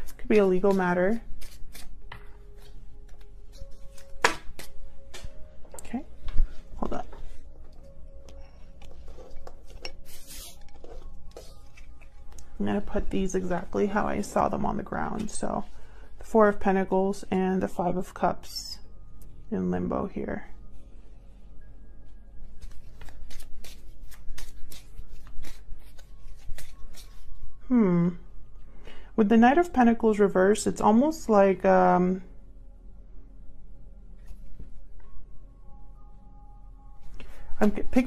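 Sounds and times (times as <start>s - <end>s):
cards sliding rustle: 1.4s - 4.7s, 8.9s - 12.5s, 22.6s - 27.3s.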